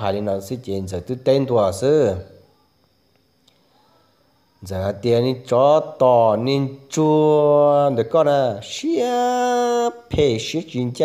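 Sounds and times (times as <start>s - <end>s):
man chanting sing-song: 4.6s - 11.0s.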